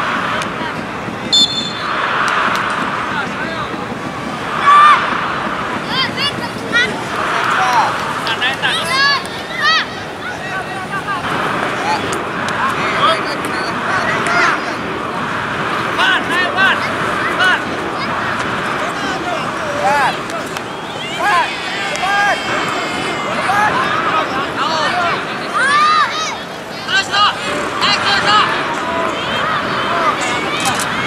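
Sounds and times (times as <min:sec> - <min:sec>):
children shouting: 0:00.0 - 0:31.0
faint engine-like drone: 0:00.0 - 0:31.0
outdoor murmur: 0:00.0 - 0:31.0.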